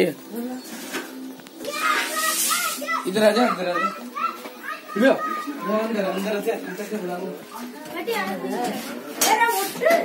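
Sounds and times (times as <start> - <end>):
children talking and calling: 0.3 - 10.0
short hiss of noise: 2.0 - 2.9.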